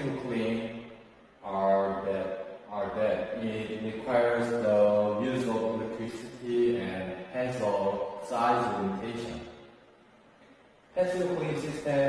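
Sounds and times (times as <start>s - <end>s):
man speaking: 0.0s - 9.6s, 10.9s - 12.0s.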